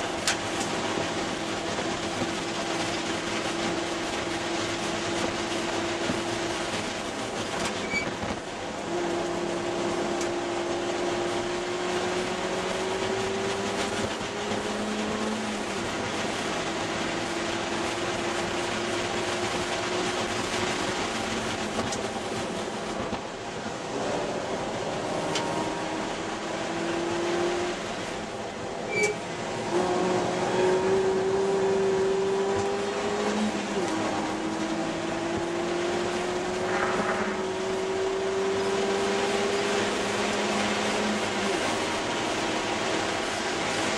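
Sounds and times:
wind and road noise: 0:00.0 - 0:43.9
car engine accelerating: 0:08.7 - 0:22.6, 0:23.8 - 0:28.4, 0:29.4 - 0:43.9.

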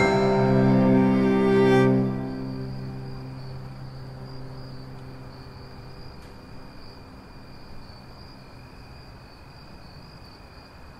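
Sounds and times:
high-pitched pulsing trill: 0:00.0 - 0:06.0
bowed string note: 0:00.0 - 0:06.4.

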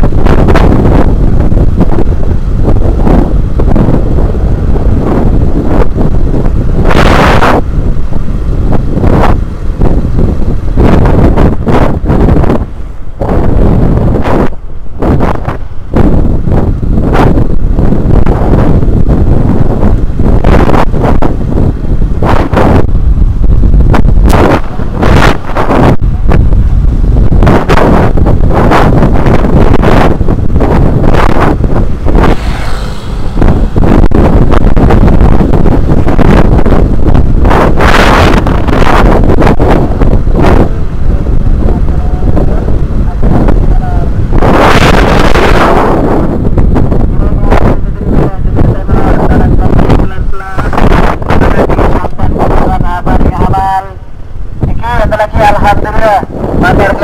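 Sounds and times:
motorcycle engine running: 0:00.0 - 0:45.6
road noise: 0:00.0 - 0:57.0
wind buffeting microphone: 0:00.0 - 0:57.0.

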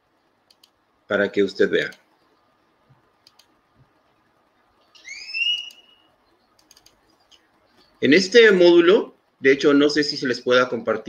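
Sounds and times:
soft clicks: 0:00.4 - 0:00.8, 0:01.8 - 0:04.0, 0:06.5 - 0:08.0
rising whistled note: 0:05.0 - 0:06.1.

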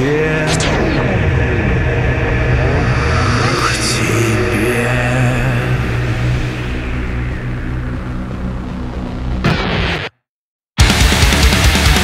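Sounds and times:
low rumbling drone: 0:00.0 - 0:09.4
sweeping whooshes: 0:00.2 - 0:09.0.

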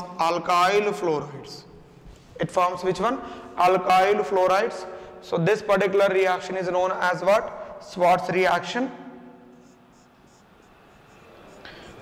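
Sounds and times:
marker squeaking on whiteboard: 0:09.5 - 0:12.0.

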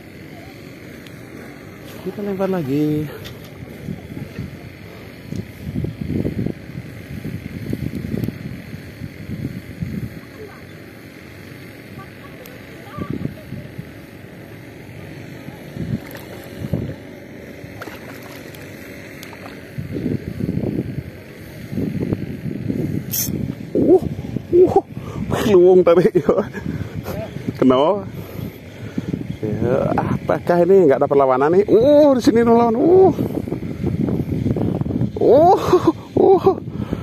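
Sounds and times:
distant boat engine hum: 0:00.0 - 0:07.7, 0:08.3 - 0:30.5
wind buffeting microphone: 0:02.3 - 0:10.5, 0:12.9 - 0:30.4, 0:31.6 - 0:37.0.

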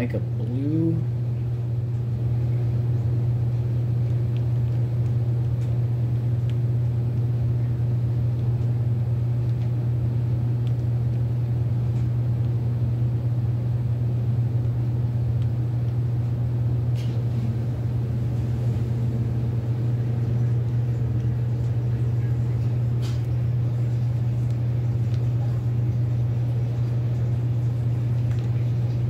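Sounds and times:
low-pitched machine hum: 0:00.0 - 0:29.0.

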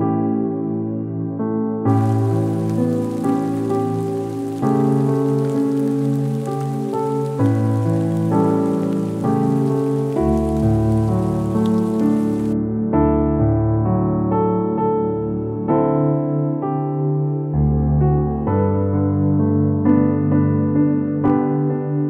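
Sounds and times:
slow soft piano music: 0:00.0 - 0:22.0
steady rain: 0:01.9 - 0:12.6.

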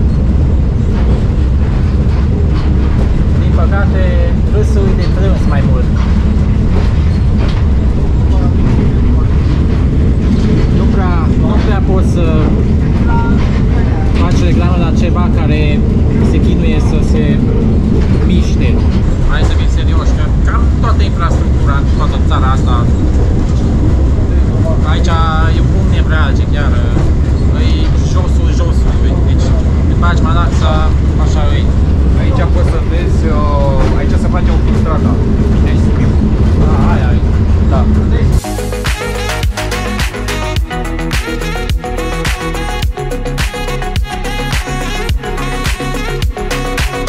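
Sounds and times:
railcar engine and running gear rumble: 0:00.0 - 0:47.0
people talking: 0:03.4 - 0:06.1, 0:08.2 - 0:39.0.

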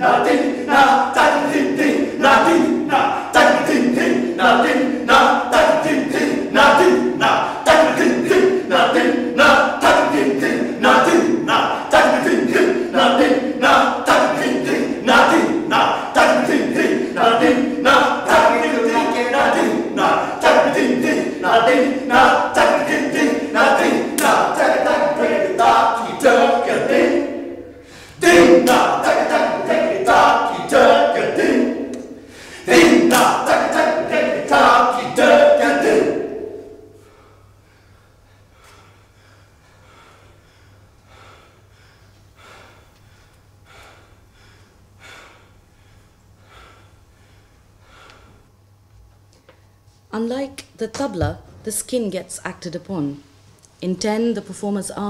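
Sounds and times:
men shouting rhythm in unison: 0:00.0 - 0:36.8
men chanting together: 0:00.0 - 0:37.0.

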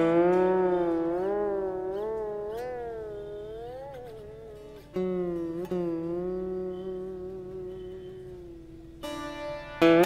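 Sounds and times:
steady lower tone: 0:00.0 - 0:09.3
slide string instrument note bending: 0:00.0 - 0:10.0.

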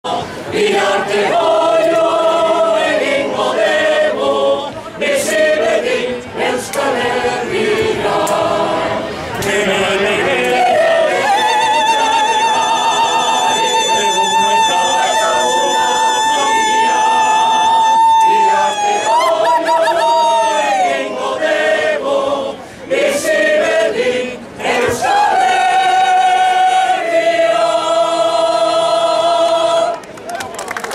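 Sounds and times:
group singing unaccompanied polyphony: 0:00.0 - 0:30.0.

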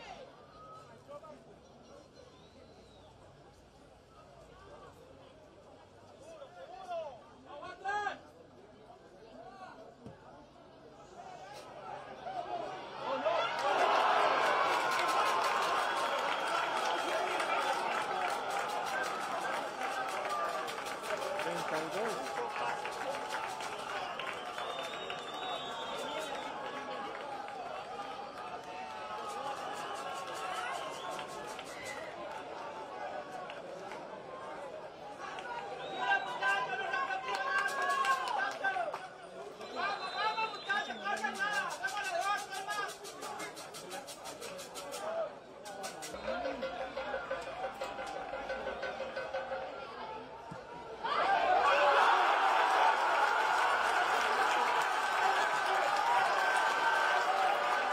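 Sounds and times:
stadium crowd noise: 0:00.0 - 0:57.9
people talking over one another: 0:04.3 - 0:52.7.

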